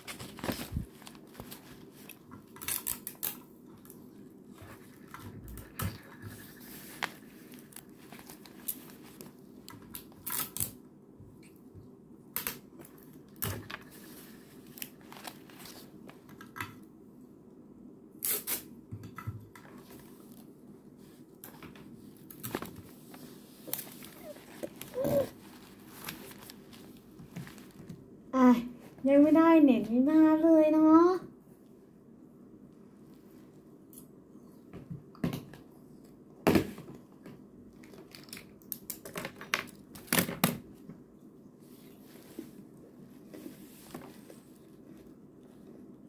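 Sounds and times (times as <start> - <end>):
notebook pages rustling: 0.0 - 2.5, 6.3 - 9.4, 13.7 - 16.2, 22.3 - 27.9.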